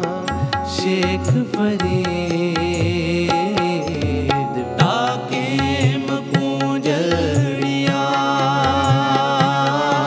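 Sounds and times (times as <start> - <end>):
harmonium melody: 0.0 - 10.0
man singing: 0.0 - 10.0
tabla strokes: 0.0 - 10.0.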